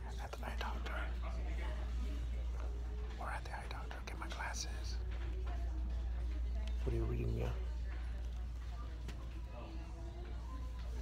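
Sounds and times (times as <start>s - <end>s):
whispered speech: 0.0s - 11.0s.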